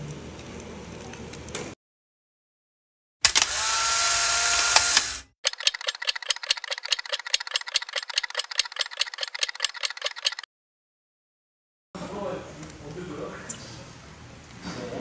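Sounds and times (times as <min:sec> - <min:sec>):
rapid mechanical clicks: 0:03.2 - 0:10.5.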